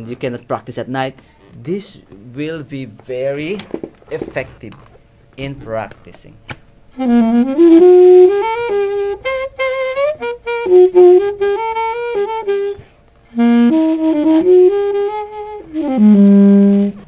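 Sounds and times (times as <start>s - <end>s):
muffled saxophone melody: 6.9s - 17.0s.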